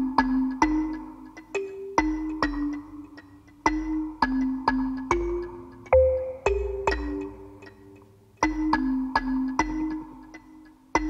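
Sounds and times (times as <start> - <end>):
mallet notes ringing: 1.5 - 11.0.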